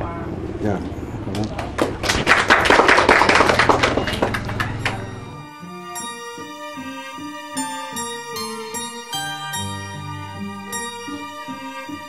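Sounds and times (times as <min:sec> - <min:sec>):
people applauding: 0:01.4 - 0:05.4.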